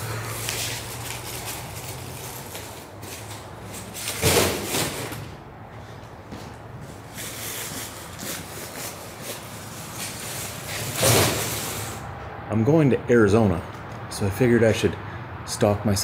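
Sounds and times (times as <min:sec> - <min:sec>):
plastic rustling: 0:00.0 - 0:05.4
footsteps: 0:00.0 - 0:11.5.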